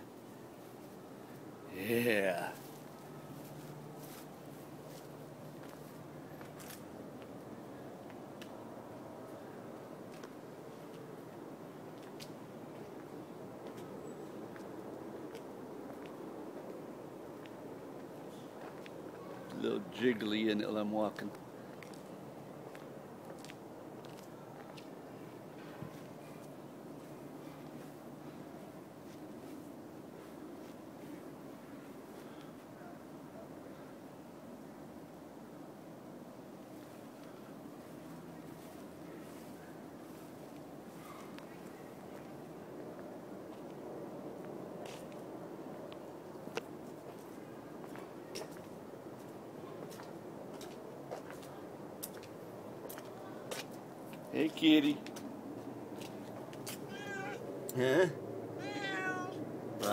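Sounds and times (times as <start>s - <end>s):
outdoor background hiss: 0.0s - 59.9s.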